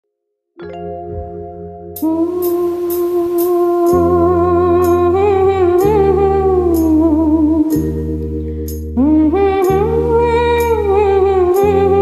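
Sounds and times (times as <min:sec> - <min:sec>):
karaoke backing track: 0:00.7 - 0:12.0
woman humming: 0:02.0 - 0:06.5.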